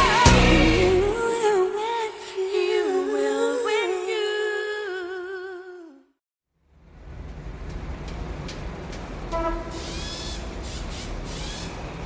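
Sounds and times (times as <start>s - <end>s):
train-like rumbling: 6.8s - 12.0s
short horn-like tone: 9.3s - 9.8s.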